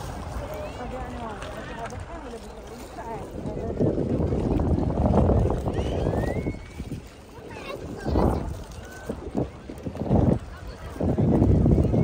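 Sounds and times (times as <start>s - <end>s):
faint voices: 0.0s - 12.0s
water washing past boat: 0.0s - 12.0s
wind on microphone: 0.0s - 12.0s.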